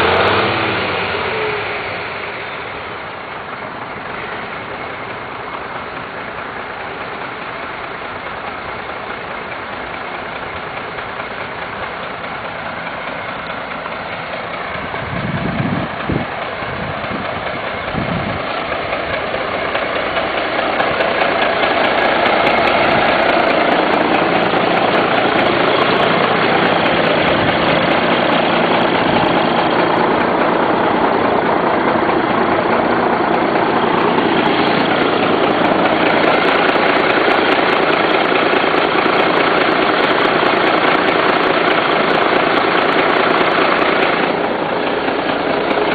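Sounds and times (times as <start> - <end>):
diesel engine idling: 0.0 - 45.9.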